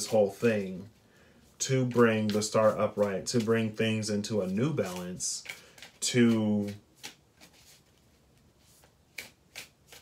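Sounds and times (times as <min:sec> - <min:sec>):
cards shuffled by hand: 0:00.0 - 0:01.0, 0:01.6 - 0:10.0.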